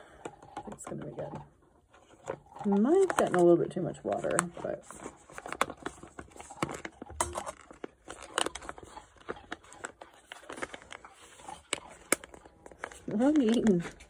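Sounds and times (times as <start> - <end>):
food pouch crinkling: 4.9 - 14.0.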